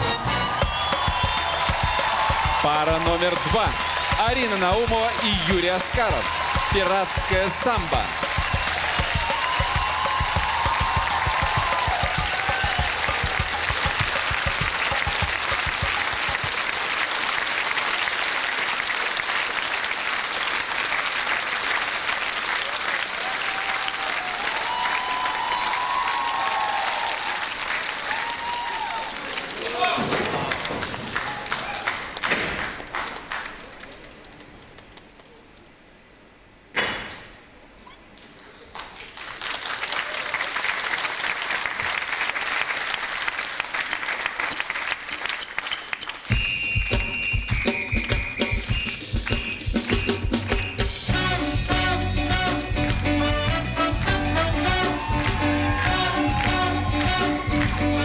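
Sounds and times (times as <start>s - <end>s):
audience applauding and cheering: 0.0s - 35.4s, 38.3s - 58.0s
low regular beat: 0.7s - 16.0s.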